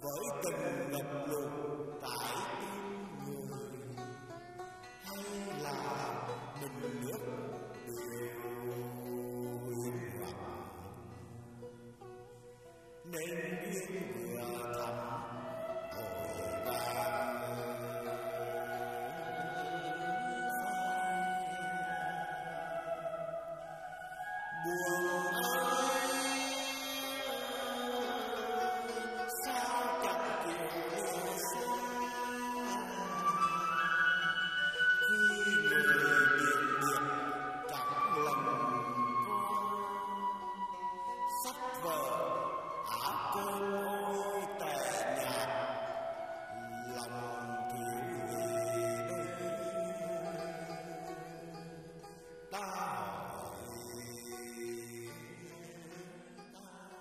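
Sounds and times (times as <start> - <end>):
person chanting poetry: 0.0 - 4.1, 5.0 - 11.1, 13.1 - 23.5, 24.3 - 51.8
slow love song: 0.0 - 57.0
soft instrumental accompaniment: 31.2 - 44.8.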